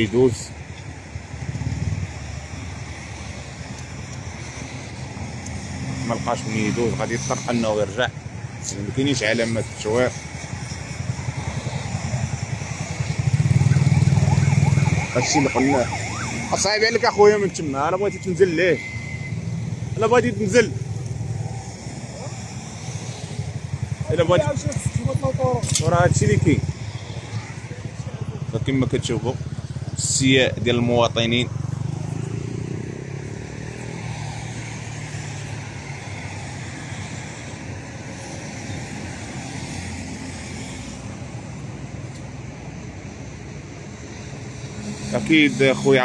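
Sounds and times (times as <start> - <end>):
motor traffic rumble: 0.0 - 46.0.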